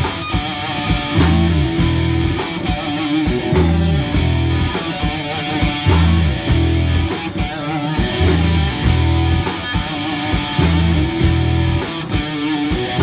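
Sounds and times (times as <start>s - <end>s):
bass guitar: 0.0s - 13.0s
electric guitar riff: 0.0s - 13.0s
steady drum beat: 0.0s - 13.0s.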